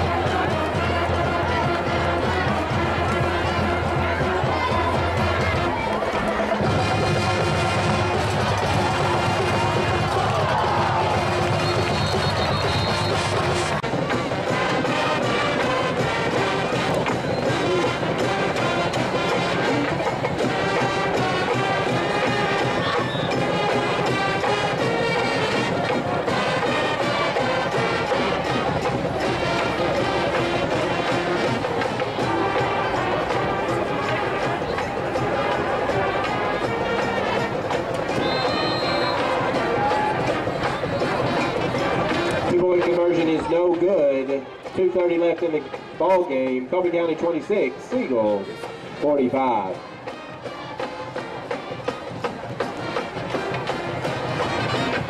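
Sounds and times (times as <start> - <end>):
drums: 0.0 - 55.0
faint crowd: 0.0 - 55.0
marching band playing: 0.0 - 55.0.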